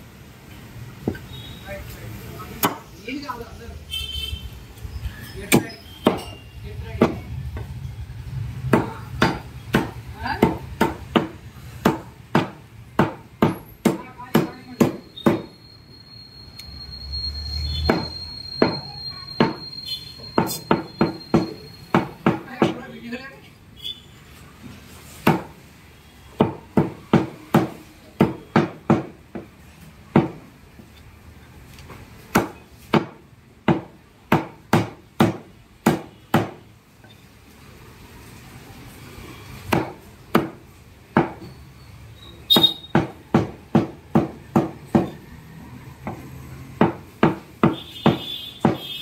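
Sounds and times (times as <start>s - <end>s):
cleaver chopping on wooden block: 8.7s - 15.4s, 20.4s - 22.8s, 25.2s - 25.6s, 26.4s - 29.5s, 32.3s - 36.6s, 39.7s - 40.6s, 41.2s - 41.5s, 42.6s - 45.2s, 46.8s - 48.9s.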